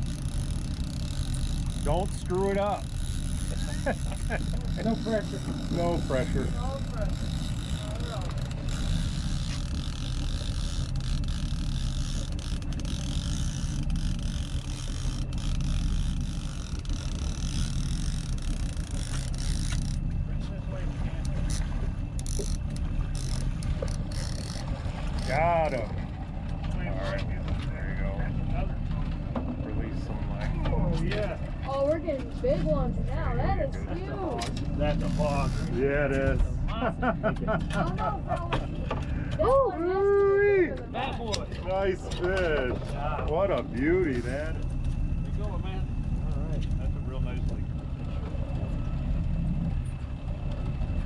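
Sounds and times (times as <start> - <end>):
boat engine rumble: 0.0 - 51.0.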